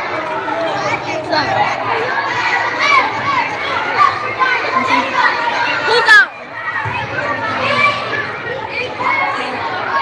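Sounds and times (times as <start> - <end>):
children talking and shouting: 0.0 - 10.0.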